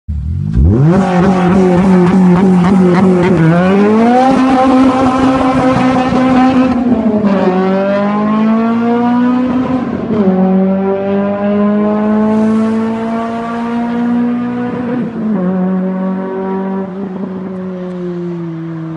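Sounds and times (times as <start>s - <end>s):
car engine accelerating in a tunnel: 0.1s - 18.9s.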